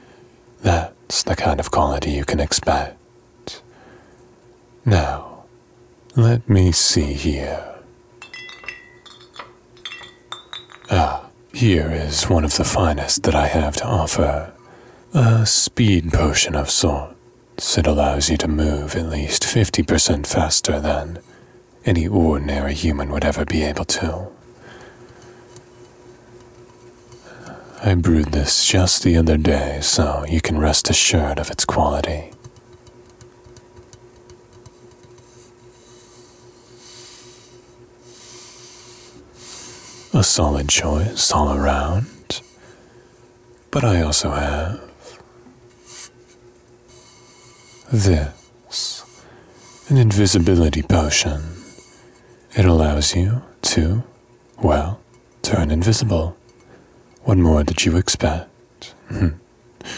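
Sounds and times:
steady low hum: 0.0s - 59.9s
glass bottles clinking: 8.2s - 11.1s.

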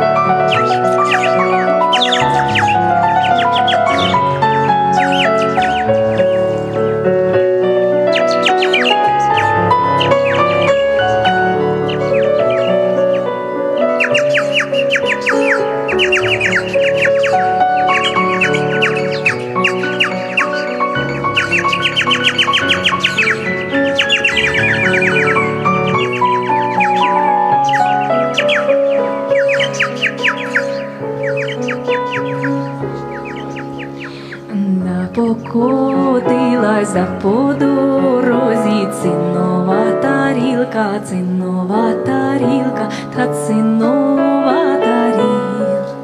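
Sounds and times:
mouth instrument high chirping runs: 0.0s - 36.9s
keyboard sustained chords: 0.0s - 46.0s.

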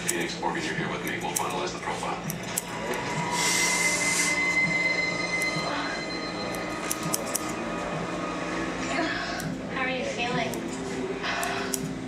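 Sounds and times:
scissors snipping hair: 0.0s - 3.2s, 6.5s - 7.6s, 9.4s - 9.6s, 10.2s - 12.0s
hissing squeal with high whine: 3.0s - 6.9s.

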